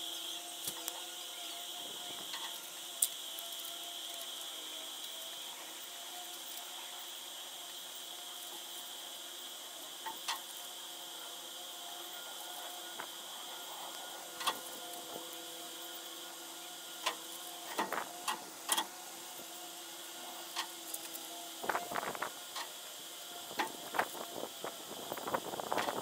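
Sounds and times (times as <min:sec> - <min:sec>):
faint steady tones: 0:00.0 - 0:26.0
steady background hum: 0:00.0 - 0:26.0.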